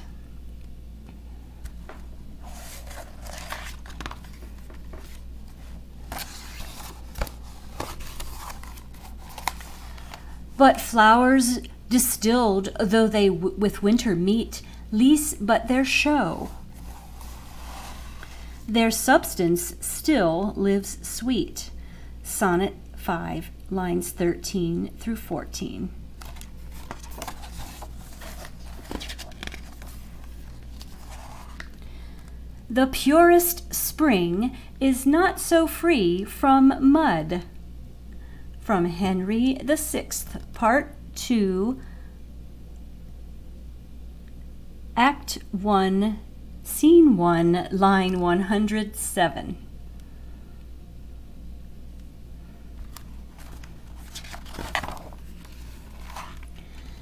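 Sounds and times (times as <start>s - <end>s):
steady low hum: 0.0s - 57.0s
paper page being turned: 2.4s - 10.3s, 26.2s - 31.8s, 52.9s - 56.9s.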